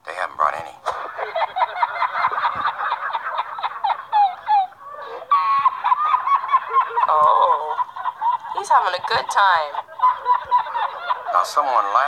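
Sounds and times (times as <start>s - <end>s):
man laughing hard: 0.8s - 12.0s.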